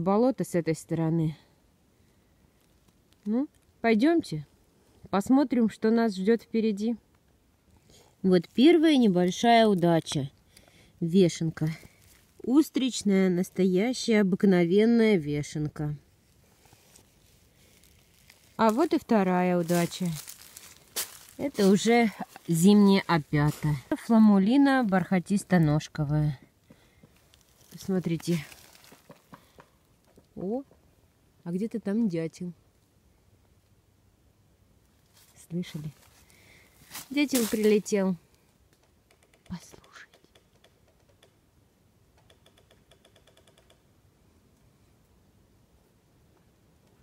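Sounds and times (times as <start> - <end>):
woodpecker tapping on tree: 28.8 - 30.8, 38.7 - 41.4, 42.1 - 43.9.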